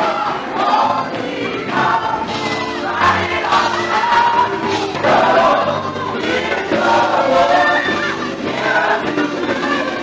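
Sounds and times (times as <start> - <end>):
gospel group singing through speakers: 0.0 - 10.0.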